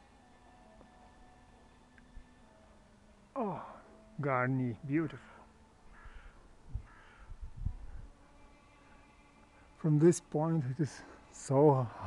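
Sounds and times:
hoarse bird calls: 5.9 - 7.4.

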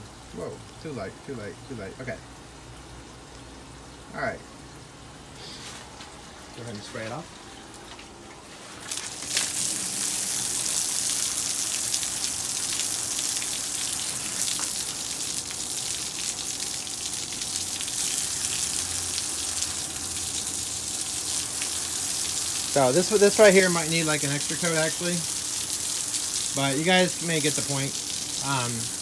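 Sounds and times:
hose spraying water on wall: 8.0 - 29.0.

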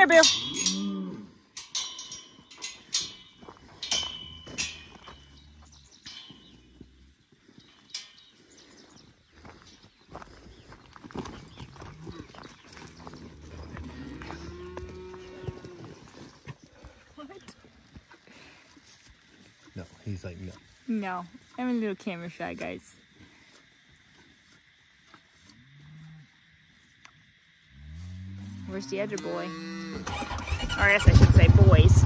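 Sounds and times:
cattle mooing: 13.4 - 15.9, 27.8 - 31.5.

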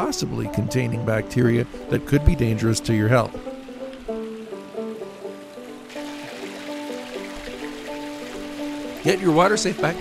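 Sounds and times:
background music with held notes: 0.0 - 10.0
running water hissing: 0.0 - 10.0.

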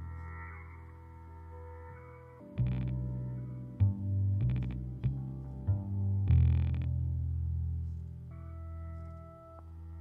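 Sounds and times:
high held effected tones: 0.0 - 3.8
guitar bass and drums trio: 2.6 - 8.2.

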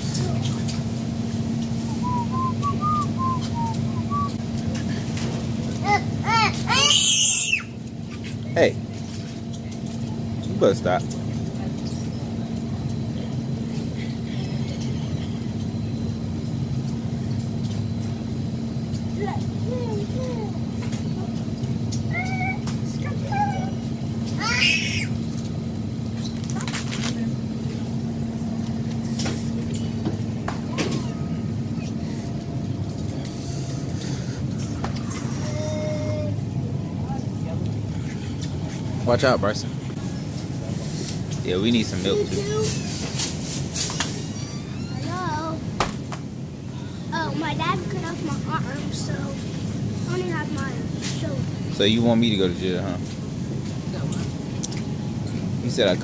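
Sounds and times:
refrigerator hum: 0.0 - 56.0
loud high-pitched cry: 5.8 - 7.8, 24.4 - 25.1.

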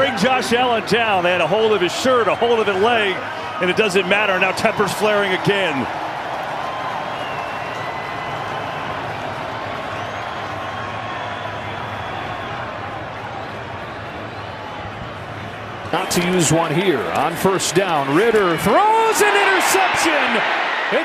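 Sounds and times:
stadium crowd noise: 0.0 - 21.0.

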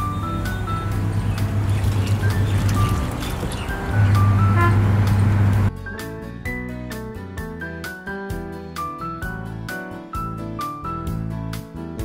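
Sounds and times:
washing machine agitating laundry: 0.0 - 5.7
washing machine motor hum: 0.0 - 5.7
background music: 0.0 - 12.0.

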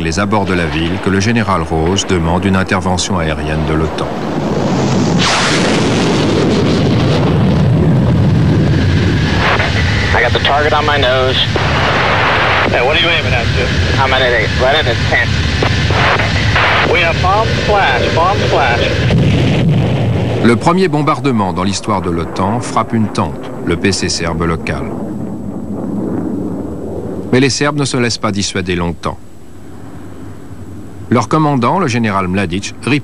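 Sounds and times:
men talking: 0.0 - 4.2, 10.1 - 11.6, 12.2 - 19.0, 20.4 - 24.9, 27.3 - 29.2, 31.1 - 33.0
military jet roaring: 0.0 - 20.7.

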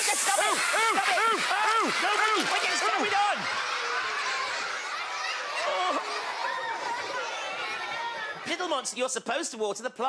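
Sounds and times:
water spraying: 0.0 - 3.1
man yelping and laughing: 0.0 - 3.5.

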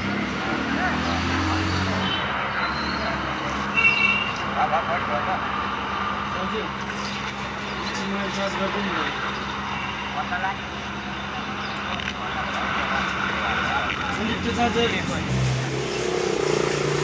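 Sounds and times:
motor traffic: 0.0 - 17.0.

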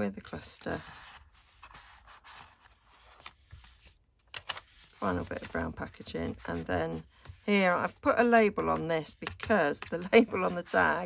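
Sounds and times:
paper pages rustling: 0.3 - 11.0
paper pages ticking: 1.6 - 7.0, 7.8 - 11.0.

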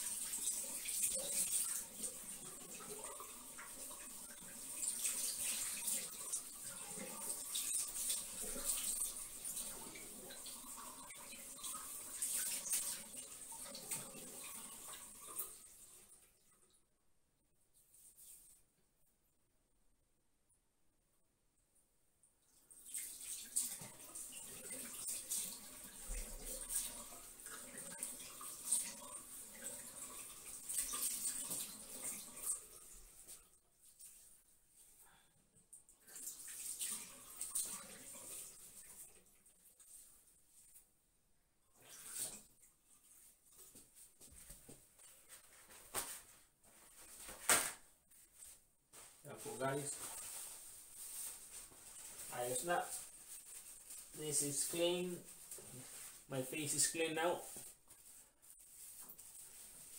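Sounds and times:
sink tap water running: 0.0 - 16.2, 22.7 - 33.4, 36.0 - 39.4, 48.4 - 59.9.

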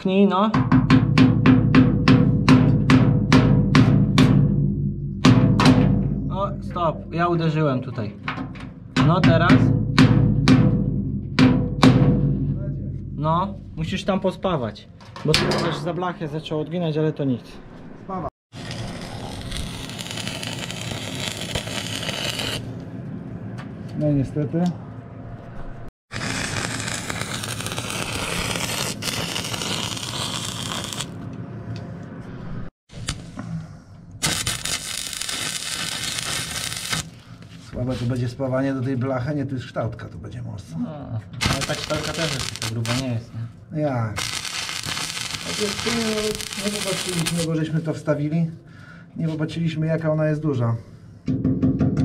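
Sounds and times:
hammer striking sheet metal: 0.6 - 13.5, 15.2 - 16.3
low hum: 4.2 - 9.0, 9.8 - 35.1
arc welding crackle: 18.5 - 22.7, 26.1 - 31.2, 34.2 - 37.2, 41.4 - 43.2, 44.2 - 47.6.

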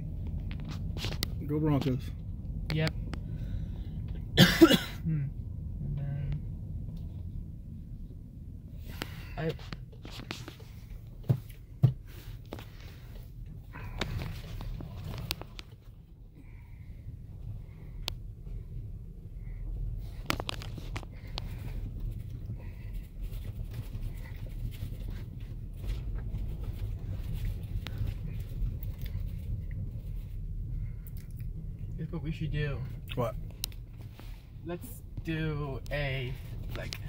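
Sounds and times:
car engine and tyre rumble: 0.0 - 37.0.

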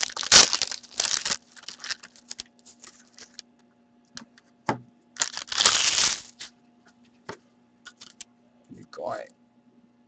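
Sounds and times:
foil wrapper crackling: 0.0 - 3.4, 5.2 - 6.5.

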